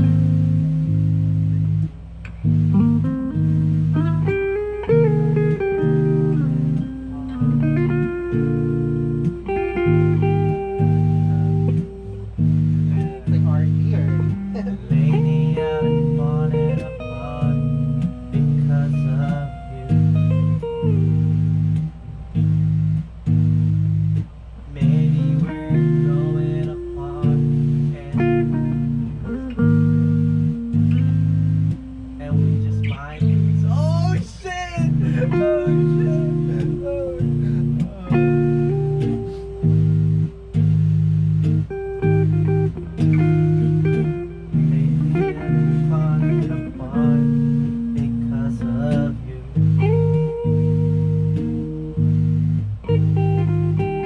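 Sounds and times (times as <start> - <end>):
electric bass low notes: 0.0 - 54.0
electric guitar melody: 0.0 - 54.0.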